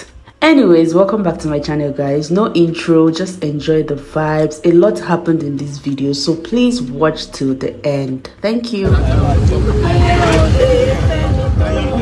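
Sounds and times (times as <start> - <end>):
vehicle rumbling: 8.9 - 12.0.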